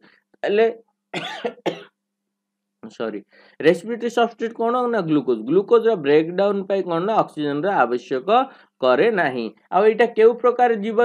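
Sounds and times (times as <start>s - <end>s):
person coughing: 1.2s - 2.0s.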